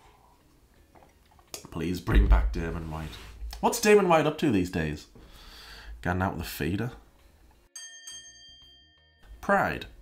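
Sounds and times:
bell-like chime: 7.8 - 10.0.

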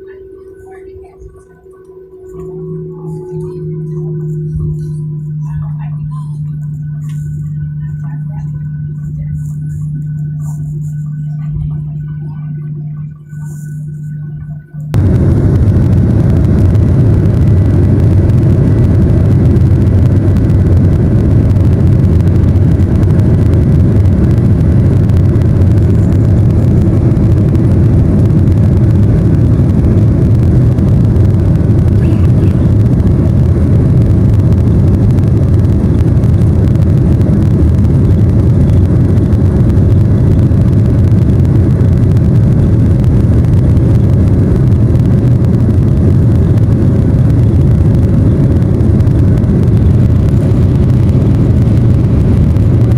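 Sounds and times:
jet engines heard from cabin: 0.0 - 52.9.

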